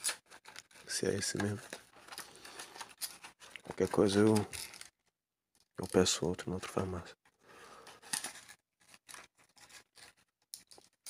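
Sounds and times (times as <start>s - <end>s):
packaging rustling: 0.0s - 5.1s.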